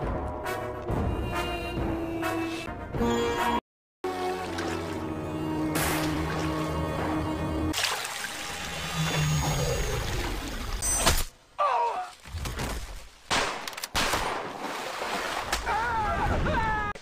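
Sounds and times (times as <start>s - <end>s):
water pouring and splashing: 4.1s - 6.8s, 7.7s - 10.8s, 14.4s - 15.7s.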